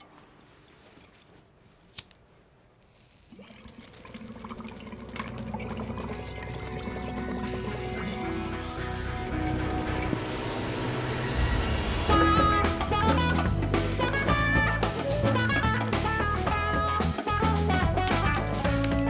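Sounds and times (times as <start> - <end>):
water bubbling in a bong: 3.3 - 8.3
music: 5.5 - 19.0.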